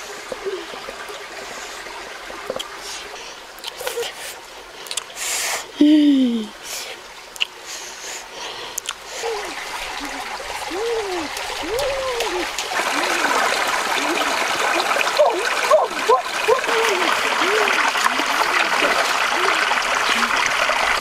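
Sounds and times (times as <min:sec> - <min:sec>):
stream gurgling over rocks: 0:00.0 - 0:21.0.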